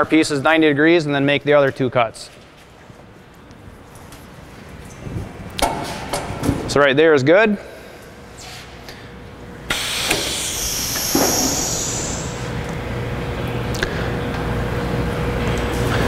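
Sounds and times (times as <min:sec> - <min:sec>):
brief hiss: 0:09.7 - 0:12.4.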